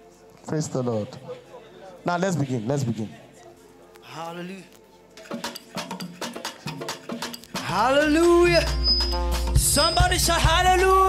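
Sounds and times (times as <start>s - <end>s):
quick percussion strikes: 5.2s - 10.7s.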